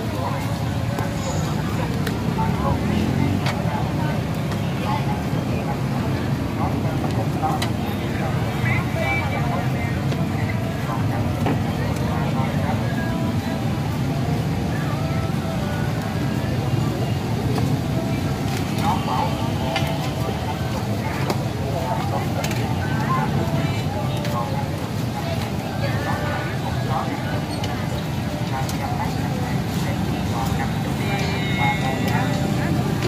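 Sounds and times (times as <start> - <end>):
people talking: 0.0 - 33.0
street traffic rumble: 0.0 - 33.0.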